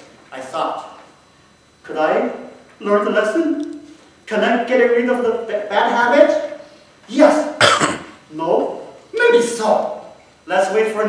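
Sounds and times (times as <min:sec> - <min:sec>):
person coughing: 0:07.6 - 0:08.2
person speaking: 0:08.2 - 0:11.0.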